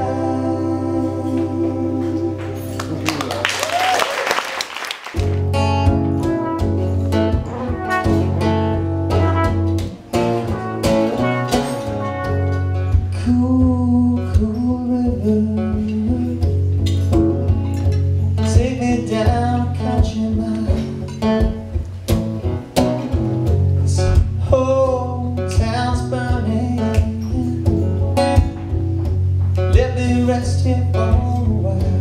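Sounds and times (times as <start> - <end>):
person singing: 0.0 - 3.1, 13.1 - 16.5
acoustic guitar: 0.0 - 3.8, 5.1 - 32.0
low bass line: 5.2 - 32.0
trumpet playing: 5.6 - 13.3.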